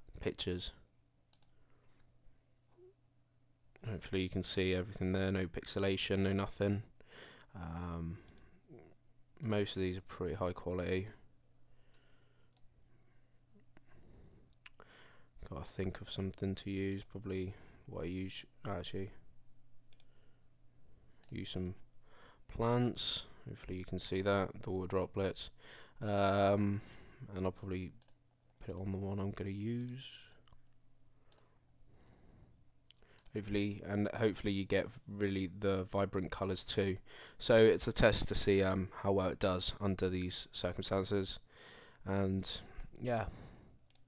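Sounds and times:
computer mouse clicks: 1.3s - 2.1s, 19.9s - 20.2s, 29.8s - 31.5s.

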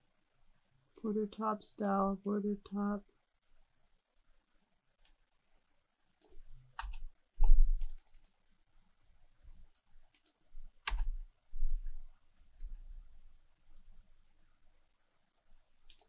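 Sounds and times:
typing on a computer keyboard: 6.2s - 8.4s, 9.4s - 13.4s, 15.6s - 16.0s.

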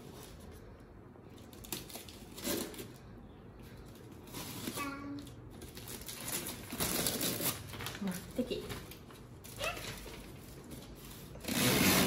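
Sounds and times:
paper and plastic rustling: 0.0s - 3.1s, 3.7s - 12.0s.

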